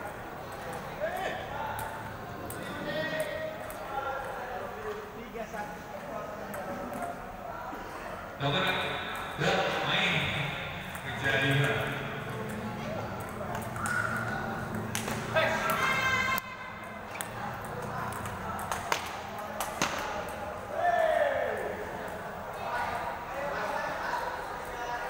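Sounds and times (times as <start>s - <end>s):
voices echoing in a hall: 0.0s - 25.0s
table tennis ball clicking: 10.8s - 15.8s, 16.8s - 20.4s.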